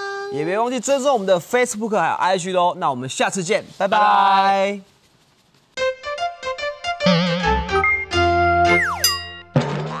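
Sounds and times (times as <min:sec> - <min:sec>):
electronic jingle: 0:07.0 - 0:09.5
tone sliding downward: 0:07.0 - 0:09.5.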